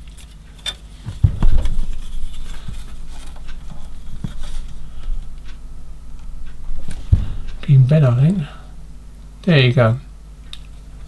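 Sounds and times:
dull thumps: 1.0 - 8.6.

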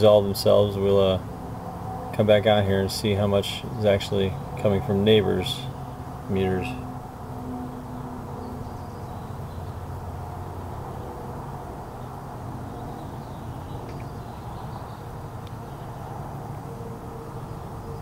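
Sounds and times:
low mechanical hum: 0.0 - 18.0.

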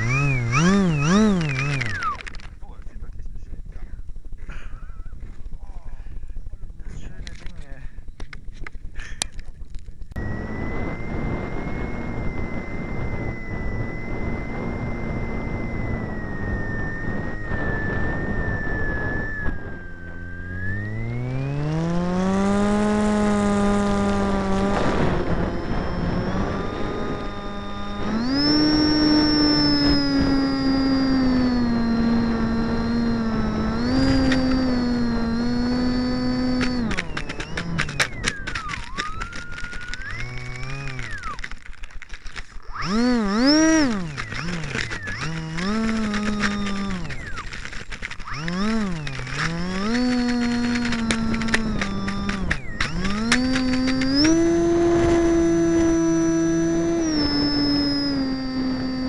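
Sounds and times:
model boat motor whining: 0.0 - 2.5, 10.2 - 59.0.

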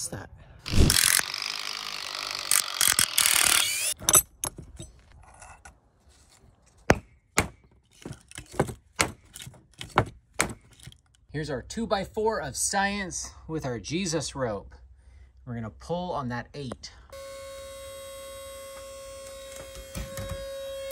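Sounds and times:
power drill boring into wood: 0.6 - 4.0.

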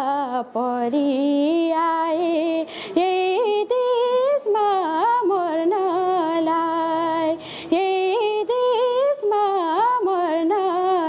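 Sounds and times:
woman singing unaccompanied: 0.0 - 11.0
quick breath: 2.6 - 3.0, 7.4 - 7.7.

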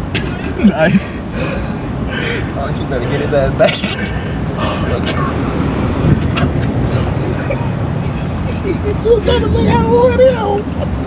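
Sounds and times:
car engine idling: 0.0 - 11.0
voices talking: 0.0 - 11.0.

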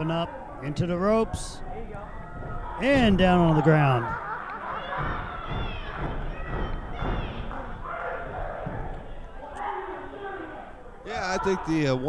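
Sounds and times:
audience shouting: 0.0 - 12.0.

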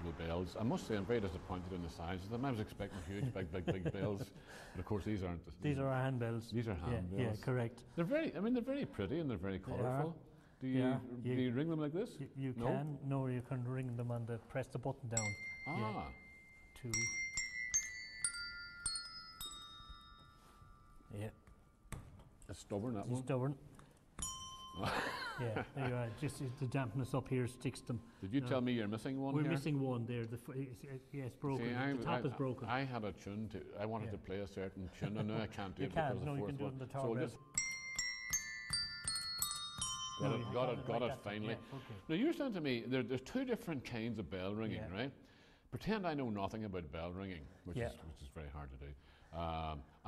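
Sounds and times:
tuned desk bells ringing: 15.1 - 21.9, 24.2 - 28.8, 37.0 - 42.9.

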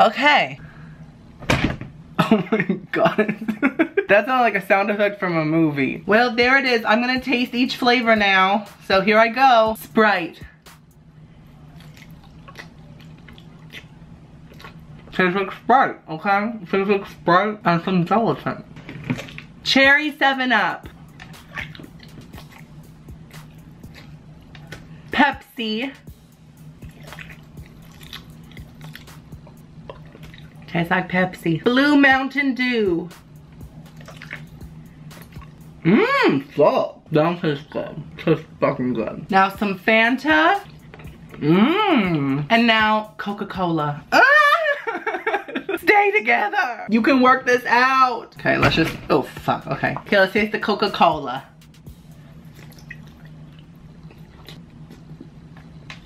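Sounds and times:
low steady hum: 0.0 - 56.0
soft background music: 4.1 - 56.0
person chewing jelly: 11.6 - 15.1, 20.9 - 25.0, 26.8 - 30.7, 33.7 - 35.6, 40.7 - 42.1, 52.1 - 56.0.

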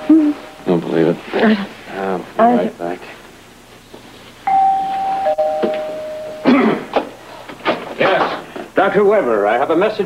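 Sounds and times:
two-note doorbell chime: 4.5 - 6.5.

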